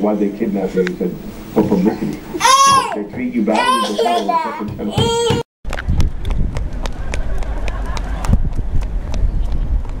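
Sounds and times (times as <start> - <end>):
quick footsteps on tarmac: 5.7 - 10.0
wind rumbling on microphone: 5.7 - 10.0.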